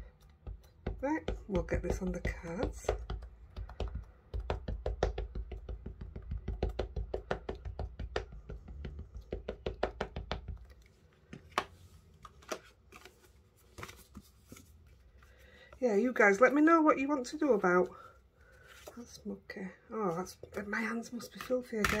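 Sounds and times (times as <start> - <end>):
ink pad tapping on stamp: 0.2 - 10.7.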